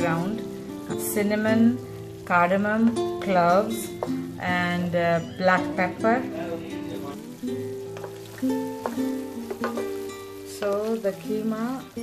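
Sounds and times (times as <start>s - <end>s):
food sizzling in a pan: 0.0s - 12.0s
plucked string instrument music: 0.0s - 12.0s.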